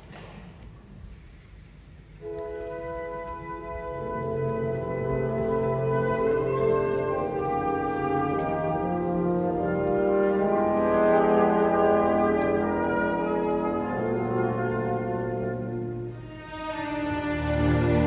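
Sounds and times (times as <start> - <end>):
orchestra playing slow chords: 2.2 - 18.0.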